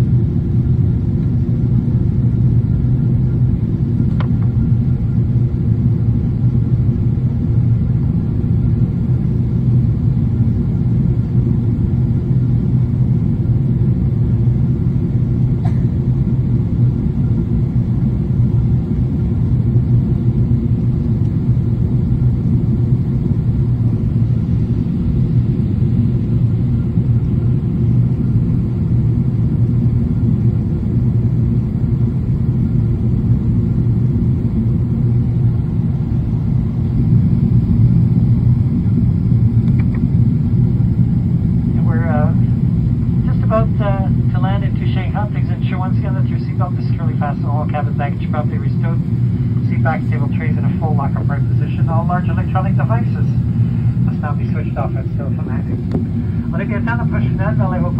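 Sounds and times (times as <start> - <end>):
jet engine drone: 0.0 - 57.9
voice on cabin speakers: 38.3 - 57.9
rushing airflow: 47.6 - 57.9.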